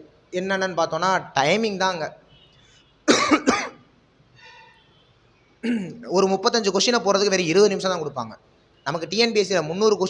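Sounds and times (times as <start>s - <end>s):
man coughing: 3.1s - 3.8s, 5.6s - 6.1s.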